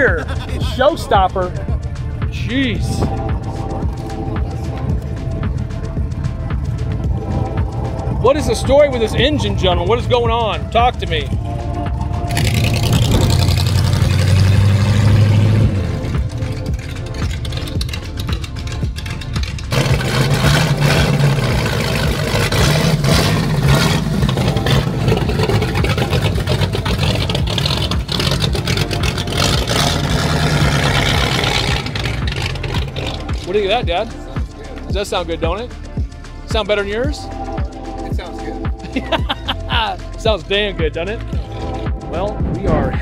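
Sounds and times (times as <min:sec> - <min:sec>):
hot rod engines running loud: 0:00.0 - 0:43.0.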